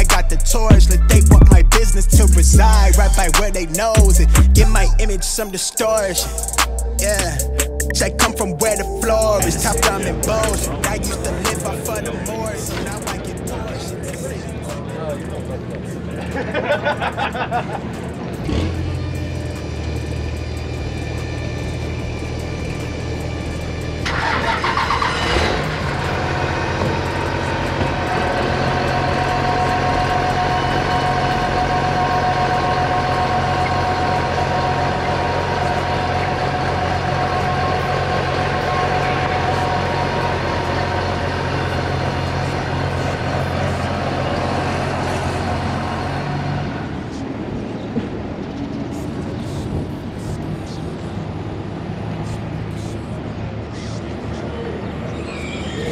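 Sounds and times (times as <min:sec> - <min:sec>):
diesel engine idling: 0:00.0 - 0:55.2.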